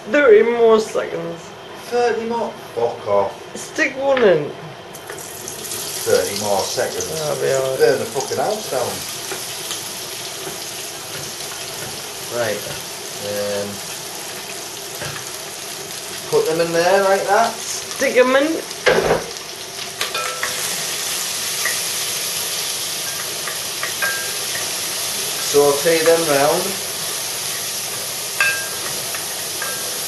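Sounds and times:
oil sizzling in a pot: 4.9s - 30.0s.

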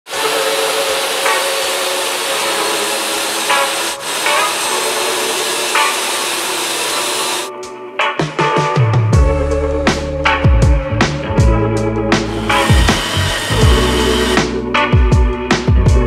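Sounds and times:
table saw cutting wood: 0.0s - 7.5s, 12.2s - 14.6s
faint music with a beat: 7.5s - 16.0s.

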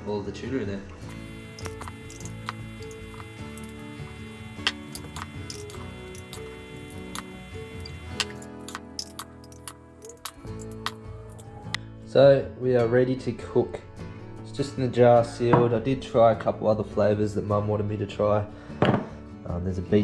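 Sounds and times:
guitar music: 1.0s - 12.0s.

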